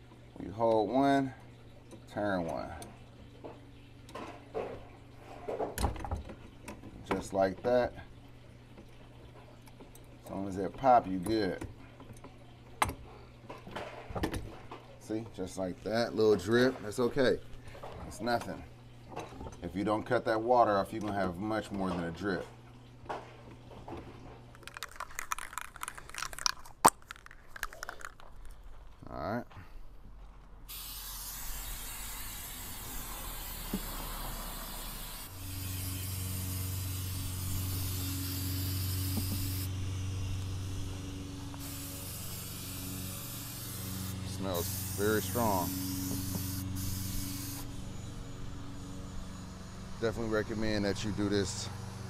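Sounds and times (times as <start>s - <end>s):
spray paint can hissing: 24.6s - 28.1s, 30.7s - 39.7s, 41.6s - 47.7s.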